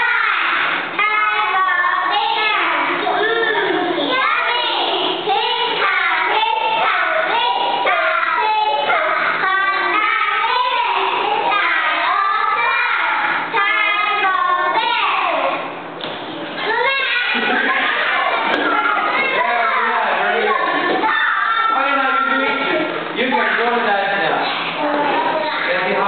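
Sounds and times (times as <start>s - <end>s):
young children singing a chant: 0.0s - 15.8s, 16.6s - 26.0s.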